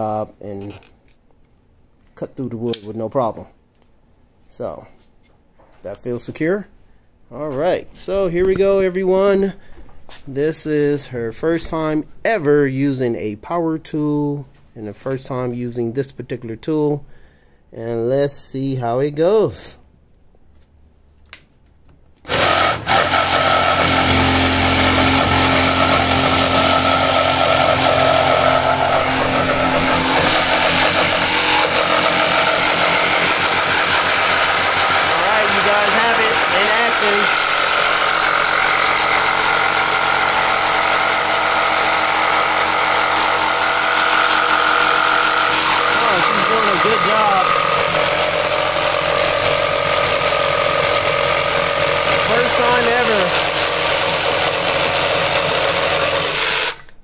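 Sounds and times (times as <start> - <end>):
jigsaw cutting wood: 22.3 - 56.9.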